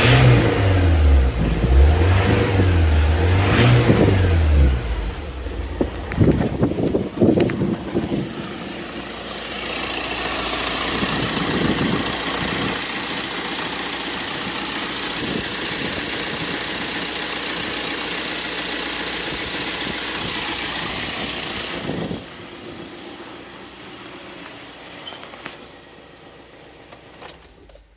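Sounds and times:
diesel engine idling: 0:00.0 - 0:27.9.

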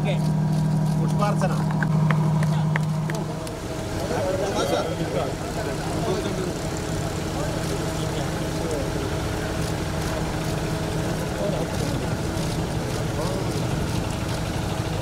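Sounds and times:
low droning hum: 0:00.0 - 0:15.0
murmur of people talking: 0:00.0 - 0:15.0.

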